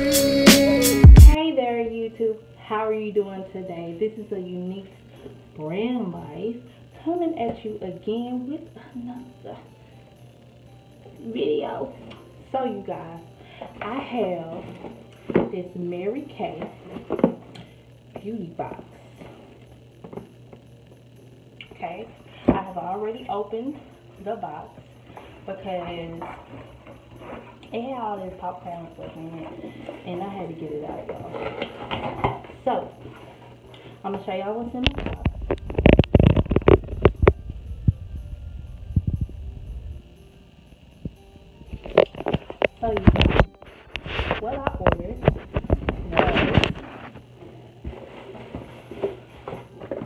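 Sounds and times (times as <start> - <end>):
steady low hum: 0.0 - 50.0
phone handling rumble: 34.8 - 38.0, 41.1 - 50.0.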